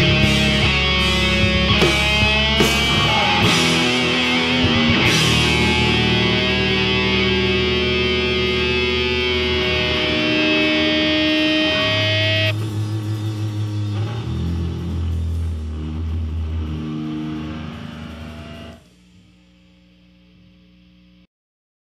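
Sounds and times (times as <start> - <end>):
low guitar notes ringing: 0.0 - 18.8
distorted electric guitar chord: 0.0 - 19.1.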